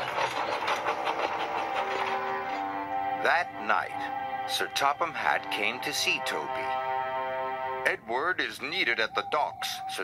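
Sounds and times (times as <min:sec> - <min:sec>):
steam locomotive chuffing: 0:00.0 - 0:02.8
music with long held notes: 0:00.1 - 0:10.0.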